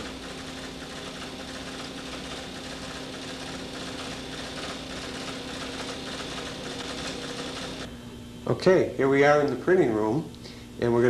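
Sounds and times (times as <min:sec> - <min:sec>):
paper tape punch chattering: 0:00.0 - 0:07.9.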